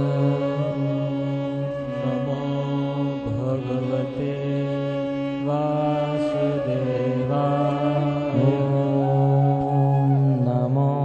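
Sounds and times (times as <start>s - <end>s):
devotional chanting with music: 0.0s - 11.0s.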